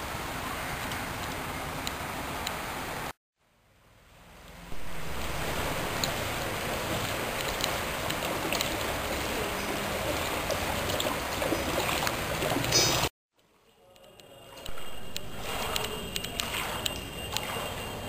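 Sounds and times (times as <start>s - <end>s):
steady outdoor rush: 4.5s - 13.1s
water sloshing as people wade: 4.6s - 13.1s, 14.3s - 18.0s.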